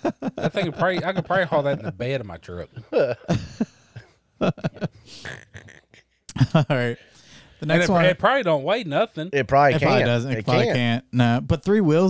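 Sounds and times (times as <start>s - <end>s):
man laughing: 0.0s - 7.0s.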